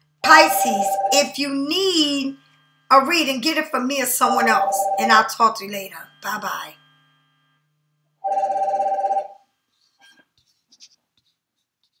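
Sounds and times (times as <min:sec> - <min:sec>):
trilling electronic ringtone: 0:00.2 - 0:02.3, 0:04.2 - 0:06.8, 0:08.2 - 0:09.4.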